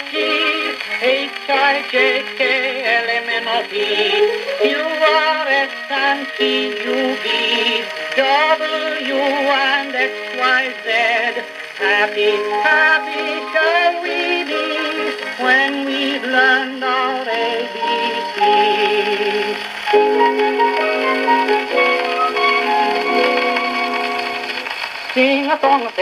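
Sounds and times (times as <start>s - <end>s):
small orchestra on old gramophone: 0.0s - 26.0s.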